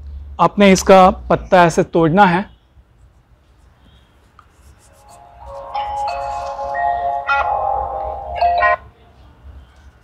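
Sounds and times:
bell-toned chime tune: 0:05.2 - 0:08.8.

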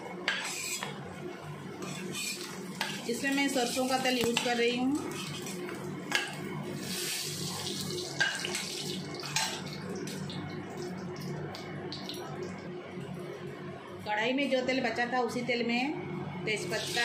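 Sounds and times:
metal spatula scraping pan: 0:00.3 - 0:01.0, 0:01.8 - 0:07.0
hot oil sizzling: 0:01.8 - 0:12.2, 0:16.7 - 0:17.0.

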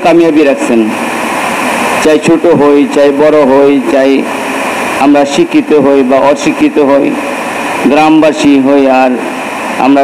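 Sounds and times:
man preaching: 0:00.0 - 0:00.9, 0:02.0 - 0:04.3, 0:05.0 - 0:07.2, 0:07.8 - 0:09.2, 0:09.8 - 0:10.0
faint steady hum: 0:00.0 - 0:10.0.

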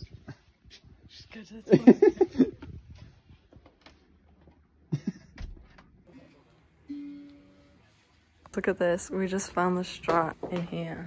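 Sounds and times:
plucked guitar note ringing: 0:06.9 - 0:07.8.

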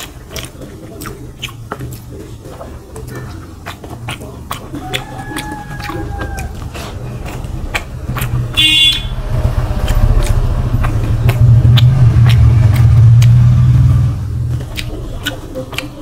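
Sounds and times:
wet mouth clicks from eating: 0:00.0 - 0:16.0
vehicle engine rumbling past: 0:06.1 - 0:15.3.

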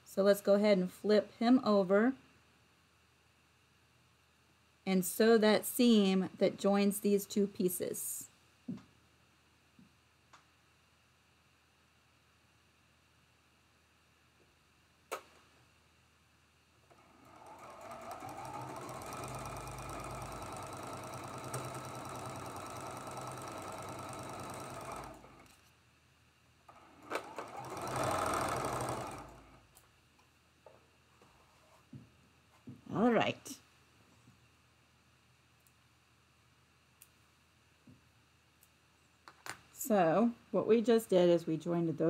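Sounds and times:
electric sewing machine stitching: 0:16.9 - 0:25.5, 0:26.7 - 0:29.6.

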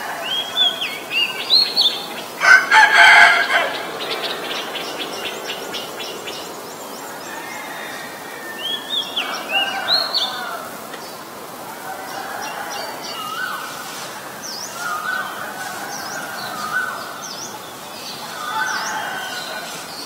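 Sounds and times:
rooster crowing: 0:02.3 - 0:05.2, 0:07.1 - 0:10.9, 0:11.7 - 0:13.7, 0:14.8 - 0:17.2, 0:18.2 - 0:19.9.

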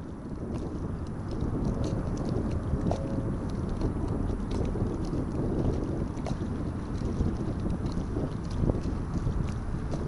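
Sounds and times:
wind buffeting microphone: 0:00.0 - 0:10.0
faint light ticks: 0:00.3 - 0:10.0.

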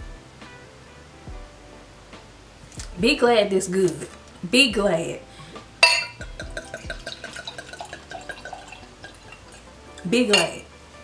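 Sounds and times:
wine glugging from bottle: 0:05.8 - 0:10.6.

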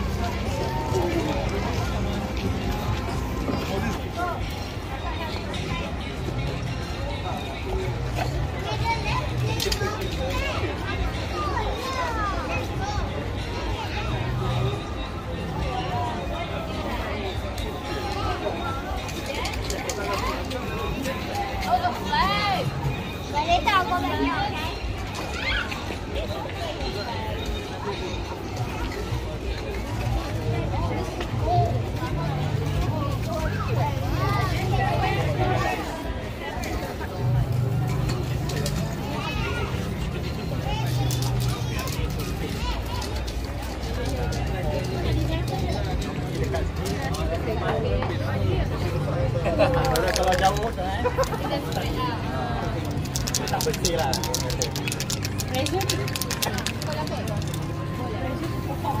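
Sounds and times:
crowd of adults and children talking: 0:00.0 - 0:59.0.

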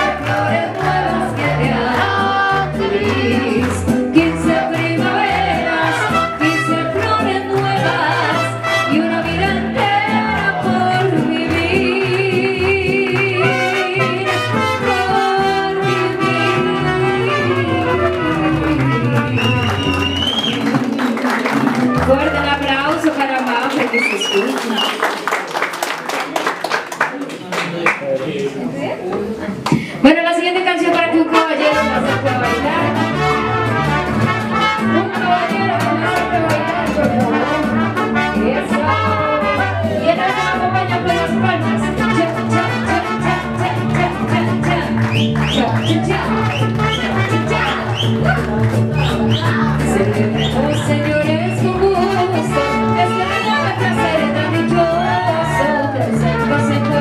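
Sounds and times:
trumpets playing melody: 0:00.0 - 0:00.6, 0:04.2 - 0:07.2, 0:07.8 - 0:09.6, 0:13.3 - 0:20.4, 0:21.7 - 0:22.9, 0:31.3 - 0:48.2, 0:52.1 - 0:55.2, 0:56.1 - 0:57.0
bass guitar line: 0:00.0 - 0:23.4, 0:31.7 - 0:57.0
mariachi band playing: 0:00.0 - 0:25.7, 0:30.1 - 0:57.0.

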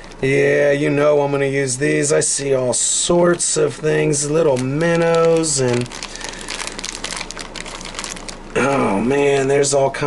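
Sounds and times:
plastic packet crinkling: 0:00.0 - 0:00.3, 0:04.1 - 0:08.6.

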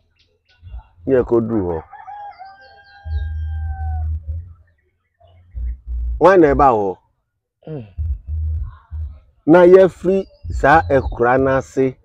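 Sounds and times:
rooster crowing: 0:01.8 - 0:04.3
high bird chirps: 0:02.1 - 0:06.6, 0:07.9 - 0:12.0
low rumble: 0:03.1 - 0:04.6, 0:05.5 - 0:06.6, 0:07.9 - 0:09.3.

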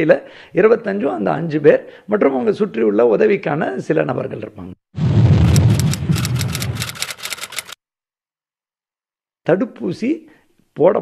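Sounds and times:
fast sharp clicks: 0:05.5 - 0:07.8.

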